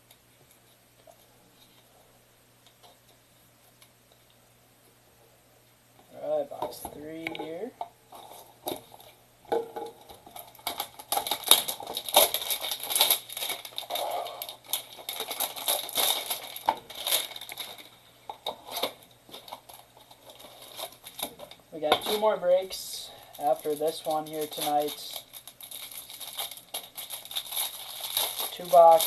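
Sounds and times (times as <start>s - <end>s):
wrapping crinkling: 6.2s - 29.0s.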